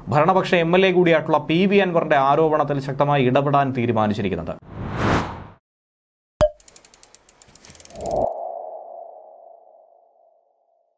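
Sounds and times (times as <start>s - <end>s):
quick run of ticks: 6.6s - 8.3s.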